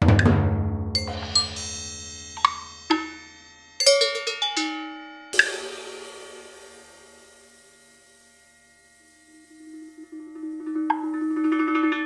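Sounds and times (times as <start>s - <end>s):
bright hissing cymbal wash: 1.0s - 3.5s, 5.3s - 12.0s
metal percussion strokes: 1.0s - 12.0s.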